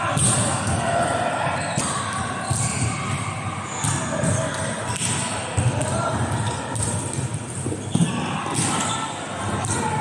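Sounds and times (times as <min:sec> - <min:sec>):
volleyball impacts in echoing hall: 0:00.0 - 0:10.0.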